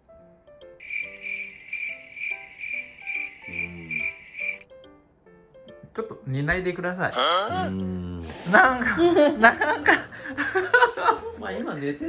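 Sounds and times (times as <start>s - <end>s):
light background music: 0.0s - 12.0s
cricket chirping trill: 0.8s - 4.6s.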